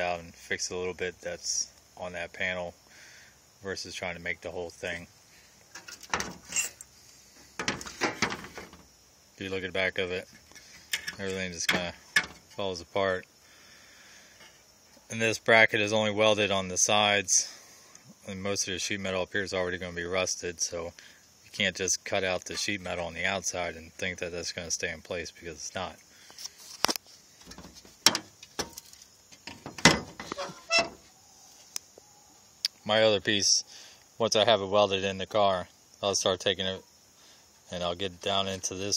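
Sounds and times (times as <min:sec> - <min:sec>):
sheet metal scraping and clinking: 0:05.8 - 0:06.8, 0:29.6 - 0:31.0
metal panel knocking and scraping: 0:06.0 - 0:06.7, 0:07.6 - 0:08.8, 0:11.0 - 0:12.6, 0:27.4 - 0:28.8, 0:29.4 - 0:31.0.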